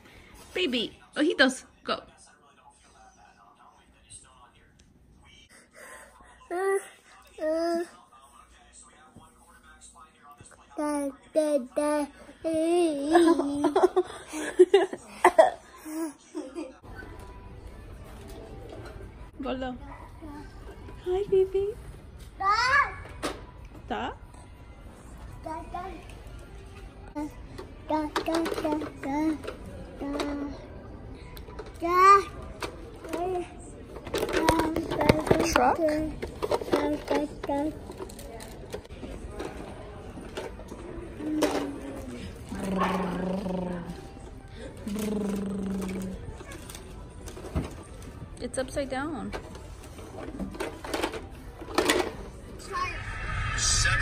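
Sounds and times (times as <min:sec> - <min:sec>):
plastic toy clattering and clicking: 0:27.5 - 0:30.4, 0:34.0 - 0:42.1, 0:45.0 - 0:48.1, 0:49.3 - 0:52.3.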